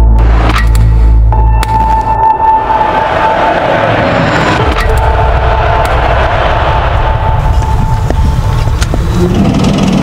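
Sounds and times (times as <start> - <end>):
dense rumbling noise: 2.9 - 10.0.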